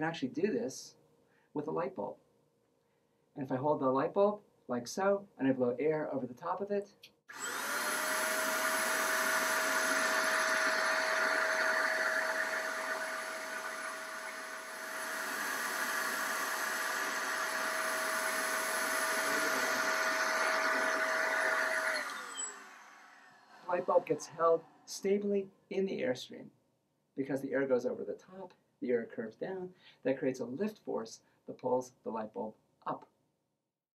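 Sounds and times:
electric duster motor whine: 7.3 - 24.8
rush of blown air: 8.4 - 22.0.

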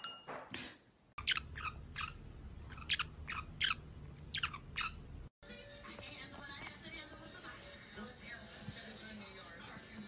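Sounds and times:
low steady hum: 0.0 - 5.3
parrot chirping: 1.2 - 5.2.

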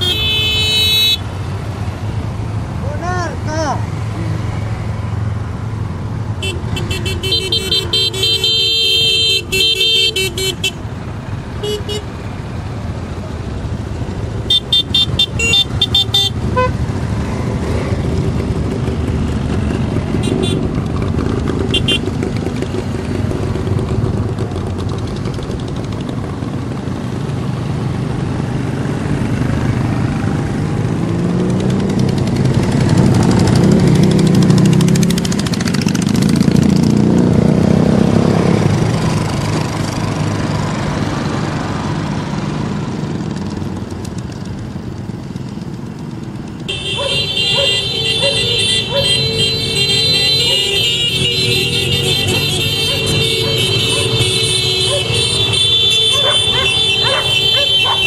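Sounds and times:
horns beeping: 0.0 - 1.4, 6.3 - 12.2, 14.4 - 17.0, 19.8 - 20.9, 21.6 - 22.2, 46.6 - 58.0
motorcycles riding past: 0.0 - 58.0.

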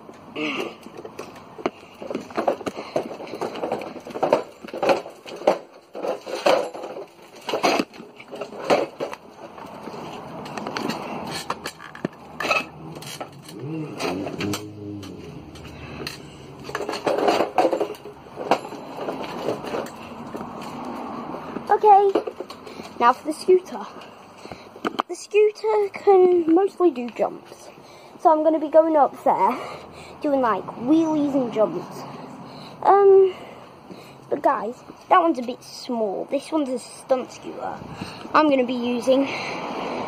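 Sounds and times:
trike rolling over concrete: 0.1 - 25.2
frame and wheels rattling: 0.6 - 22.9.

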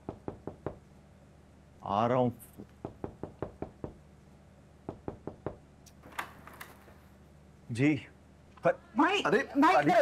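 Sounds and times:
knocking on door: 0.0 - 0.8, 2.8 - 4.0, 4.8 - 5.6.

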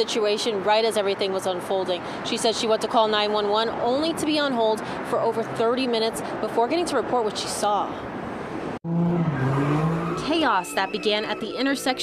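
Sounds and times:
car engine at high revs: 8.9 - 10.4
tires spinning on pavement: 8.9 - 11.2.

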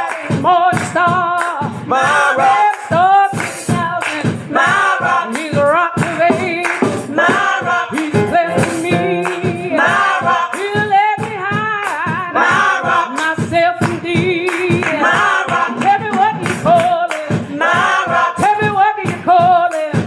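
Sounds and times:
gospel group singing: 0.0 - 11.4, 12.1 - 20.0
lead voice singing: 4.5 - 11.0.

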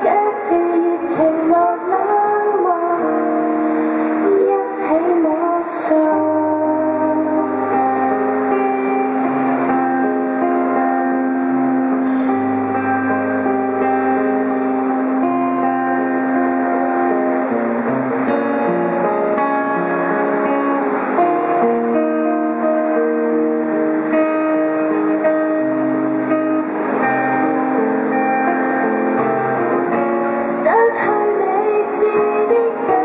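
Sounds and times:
woman singing: 0.0 - 8.2, 30.4 - 33.0
long held accompanying notes: 0.0 - 33.0
strummed acoustic guitar: 0.0 - 33.0
low bass line: 6.2 - 30.1.

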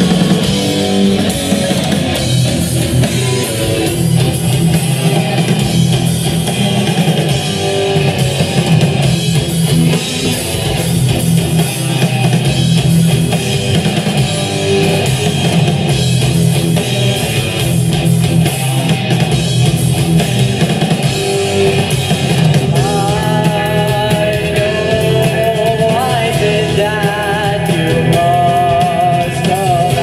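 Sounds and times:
live rock band playing: 0.0 - 30.0
person singing: 22.7 - 30.0.

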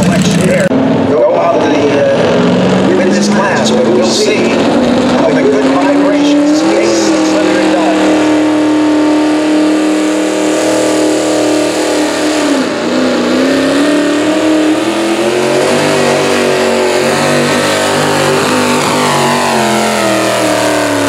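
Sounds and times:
tractor engine at high revs: 0.0 - 21.0.

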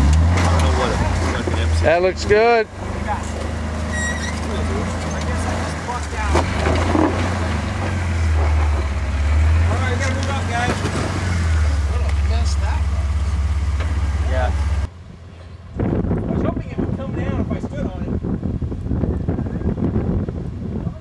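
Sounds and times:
car engine low rumble: 0.0 - 21.0.

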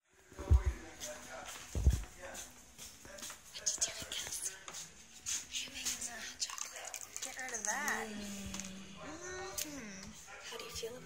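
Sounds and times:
liquid sloshing and scraping: 5.8 - 8.7
ladle stirring in metal urn: 6.2 - 8.6.

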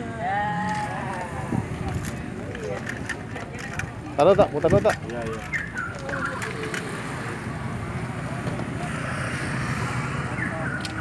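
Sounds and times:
faint voices: 0.0 - 11.0
motor vehicle rumble: 0.6 - 11.0.

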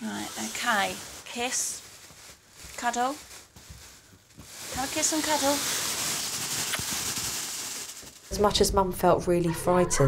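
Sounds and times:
clothing rustling: 0.0 - 8.4.

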